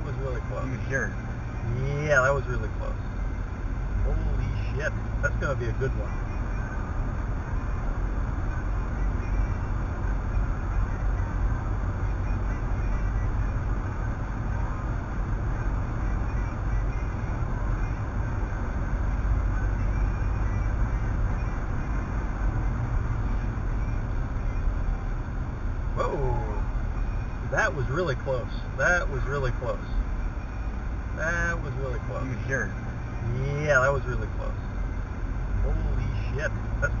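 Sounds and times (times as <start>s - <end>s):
road and engine noise in car: 0.0s - 37.0s.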